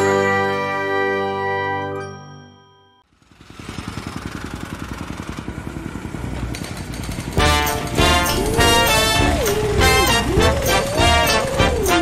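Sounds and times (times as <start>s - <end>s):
music: 0.0s - 3.0s, 7.4s - 12.0s
chiming jingle: 0.0s - 3.1s
engine chugging: 3.1s - 12.0s.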